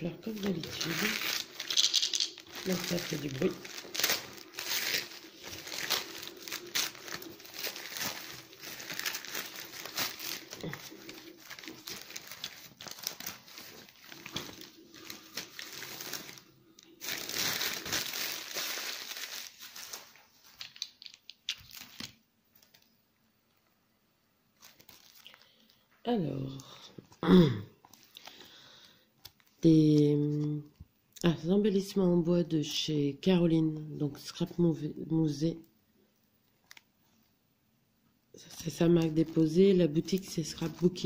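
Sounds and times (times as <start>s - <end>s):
gift wrapping crinkling and tearing: 0.0s - 22.9s, 24.6s - 25.8s, 38.4s - 41.0s.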